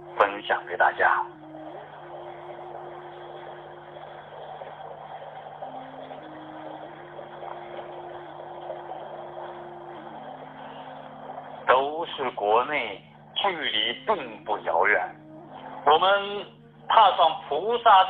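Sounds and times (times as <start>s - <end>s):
low drone: 0.0s - 18.0s
soft held-note music: 0.0s - 18.0s.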